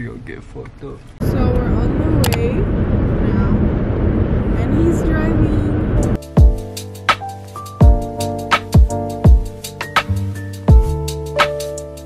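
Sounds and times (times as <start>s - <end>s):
car road and engine rumble: 0.0s - 8.7s.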